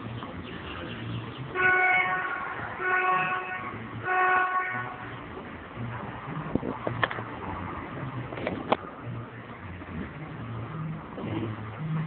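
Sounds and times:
horn blasts: 1.5 - 5.2.

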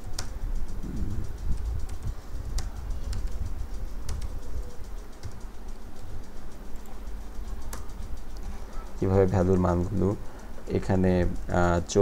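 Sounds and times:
keyboard keystrokes: 0.0 - 0.3, 4.0 - 4.4, 5.2 - 5.4
low rumble: 0.5 - 4.9.

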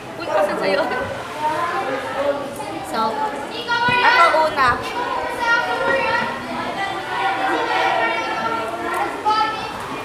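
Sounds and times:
girls talking: 0.0 - 10.0.

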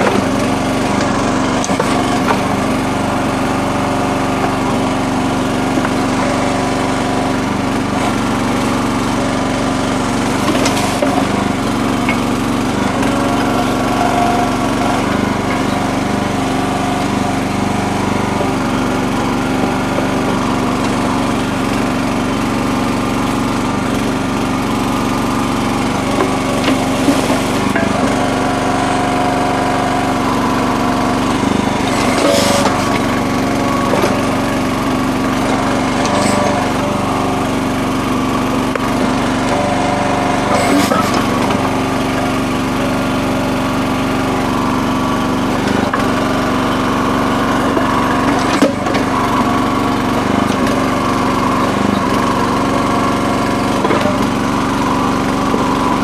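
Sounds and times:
small gas engine running: 0.0 - 56.0.

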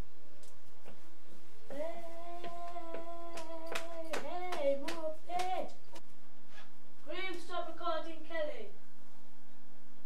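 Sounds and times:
person singing: 1.7 - 5.7
hand claps: 2.6 - 6.0.

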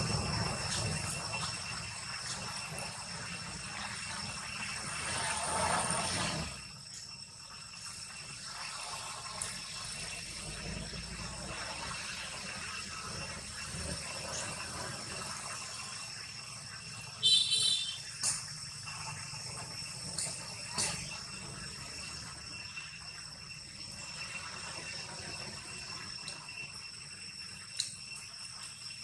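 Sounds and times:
high-pitched insect drone: 0.0 - 29.0
loud high-pitched call: 17.2 - 18.1.

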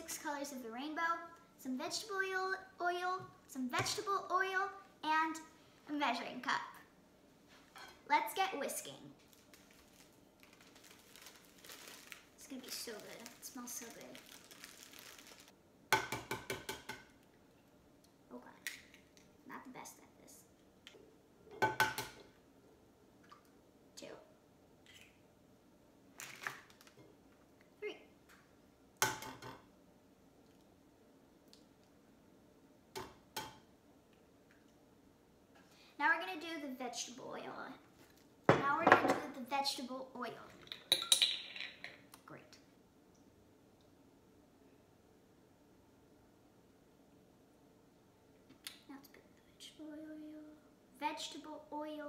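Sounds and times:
plastic bag crinkling: 9.2 - 15.5, 26.2 - 27.0.

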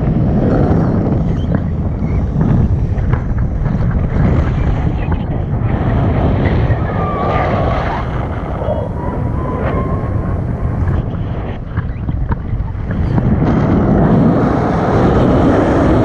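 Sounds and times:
wind rushing over microphone: 0.0 - 16.0
faint wavering voice: 6.6 - 10.4.

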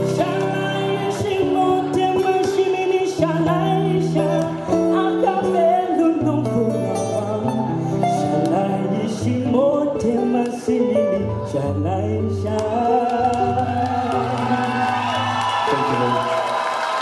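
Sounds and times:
man singing pop ballad: 0.0 - 16.3.

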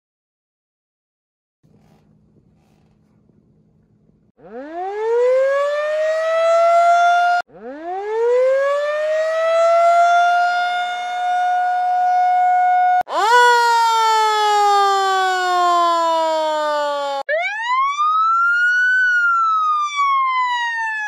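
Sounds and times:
siren winding up and down: 4.4 - 21.0.

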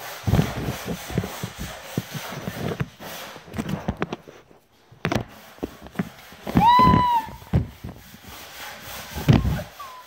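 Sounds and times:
finger rubbing on phone: 0.0 - 10.0.

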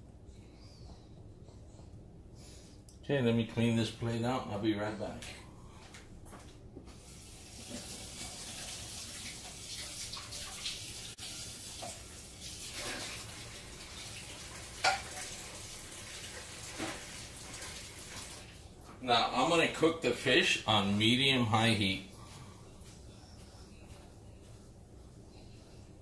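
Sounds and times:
tap running into a sink: 16.6 - 18.3.

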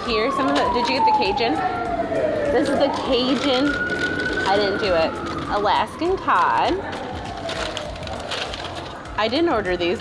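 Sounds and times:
distant siren falling in pitch: 0.0 - 7.4.

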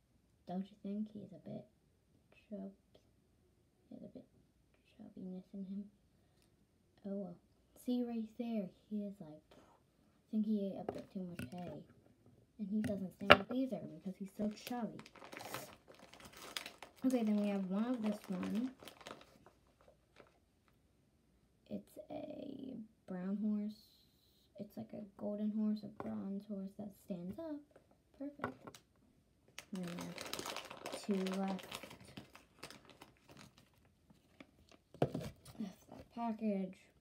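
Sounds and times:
packaging crinkling and rustling: 14.4 - 20.8, 29.6 - 35.6.

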